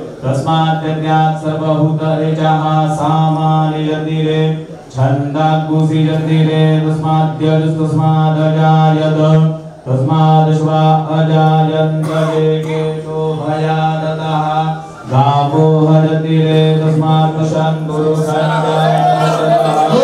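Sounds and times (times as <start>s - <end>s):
man chanting on one pitch: 0.2s - 20.0s.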